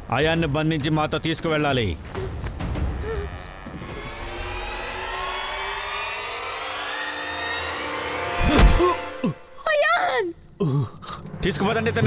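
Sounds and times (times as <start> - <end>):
dramatic rising layered tones: 1.5 - 9.5.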